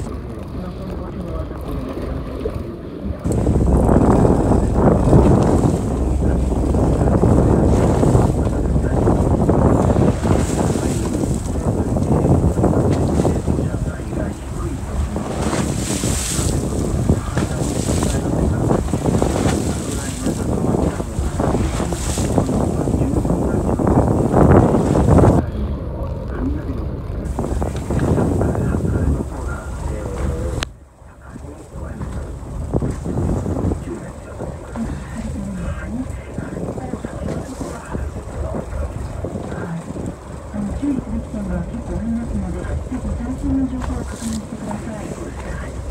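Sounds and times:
waves washing against hull: 0.0s - 45.9s
wind buffeting microphone: 0.0s - 45.9s.

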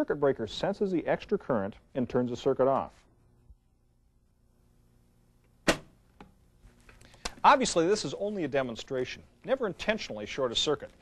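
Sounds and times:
loud sharp electrical snap: 5.4s - 6.4s.

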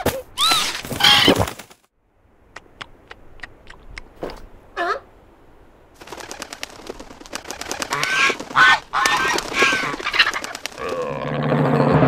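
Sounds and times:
quick run of clicks: 6.0s - 11.2s.

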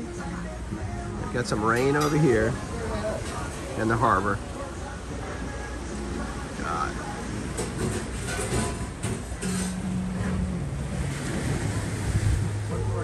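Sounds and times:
waves splashing against rocks: 6.2s - 13.0s
wind on microphone: 10.1s - 13.0s.

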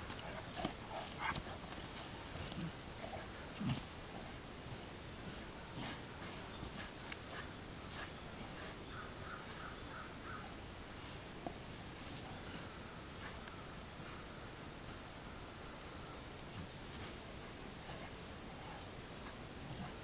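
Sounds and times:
insect chorus drone: 0.0s - 20.0s.

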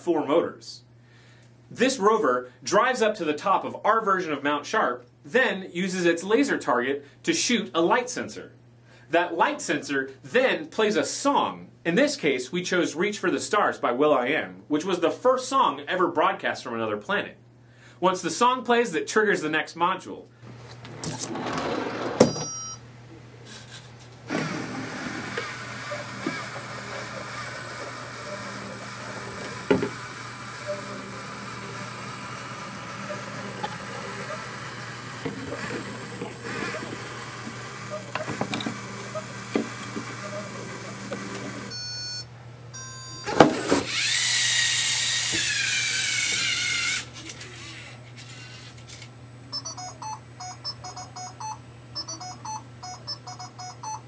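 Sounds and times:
steady mechanical hum: 0.0s - 54.0s
short electronic beeps: 41.7s - 43.3s, 49.5s - 54.0s.

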